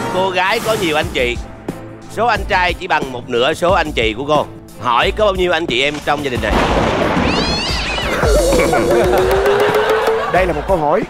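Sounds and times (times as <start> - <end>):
background music: 0.0 - 11.0
cat meow sound effect: 7.2 - 9.2.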